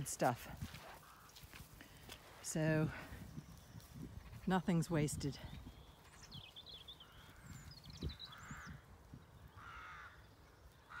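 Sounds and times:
bird harsh caws: 1.0s - 1.4s, 8.2s - 8.8s, 9.5s - 10.3s
birds twittering: 1.0s - 11.0s.

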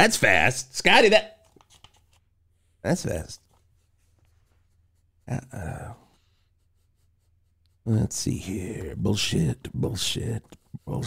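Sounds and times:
man's voice: 7.9s - 11.0s.

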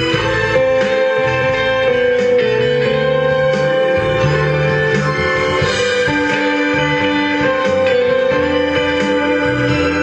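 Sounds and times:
keyboard accompaniment: 0.0s - 10.0s
keyboard guitar voice melody: 0.0s - 10.0s
moving bass line: 0.0s - 10.0s.

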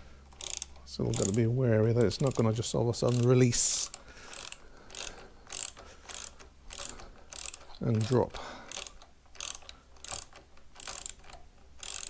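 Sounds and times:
torque wrench ratchet clicking: 0.3s - 1.4s, 3.1s - 12.0s.

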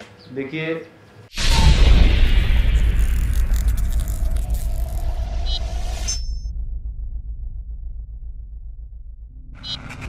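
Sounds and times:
low pulsing drone: 1.4s - 10.0s.

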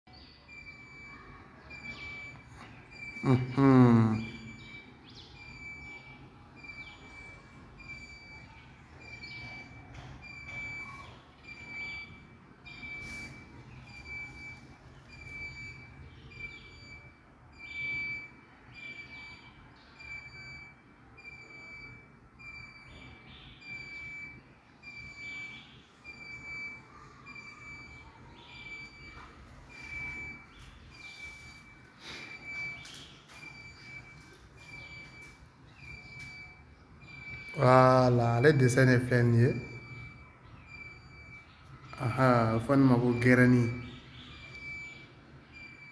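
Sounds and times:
short high-pitched beeps: 23.7s - 45.9s.

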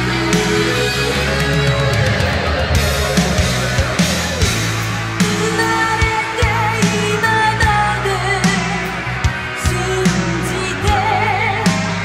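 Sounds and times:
drum hits: 0.0s - 7.0s
bass guitar: 0.0s - 12.0s
electric guitar: 0.0s - 12.0s.

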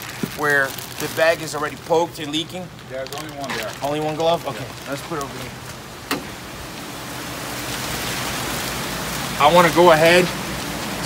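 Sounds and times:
water rushing in tubs: 3.8s - 11.0s.

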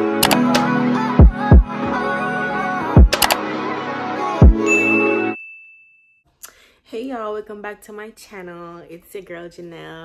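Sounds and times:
intro music: 0.0s - 5.4s
high bell ding: 4.6s - 6.2s.

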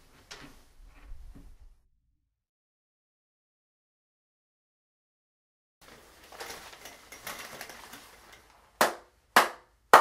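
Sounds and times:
person clapping slowly: 8.8s - 10.0s.

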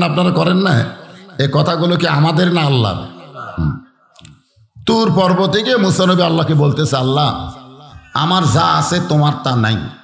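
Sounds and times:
man preaching: 0.0s - 10.0s.

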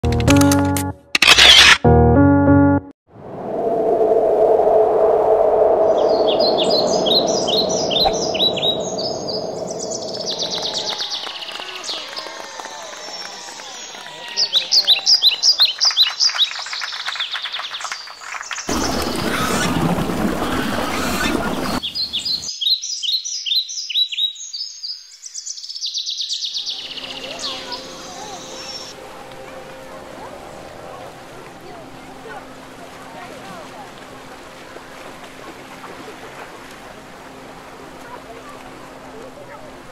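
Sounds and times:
rush of noise: 3.1s - 11.3s, 18.7s - 21.8s
birds chirping: 5.5s - 31.2s.

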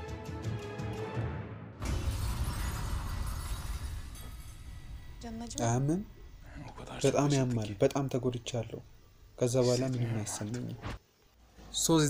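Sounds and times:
dramatic music: 0.0s - 5.4s
explosion with shattering crash: 1.8s - 5.3s.

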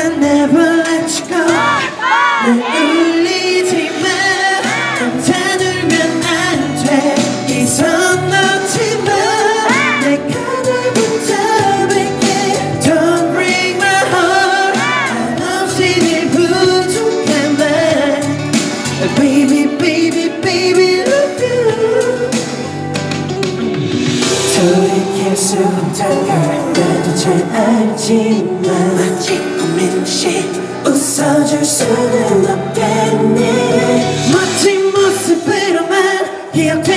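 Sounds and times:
man singing into a microphone: 0.0s - 22.7s, 24.3s - 36.9s
backing track with beat and bass: 0.0s - 36.9s.

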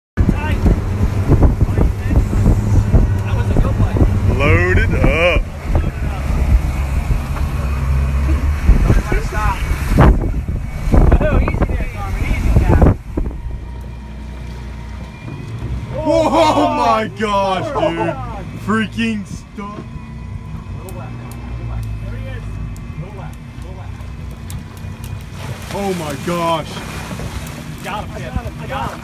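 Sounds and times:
wind noise on microphone: 0.2s - 13.8s
outboard motor humming: 0.2s - 29.0s
shouted voices: 15.9s - 18.1s.

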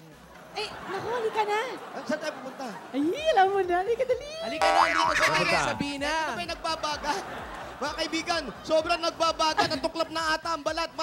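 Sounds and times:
cartoon rising slide effect: 4.6s - 5.8s
voices talking: 4.6s - 6.0s.

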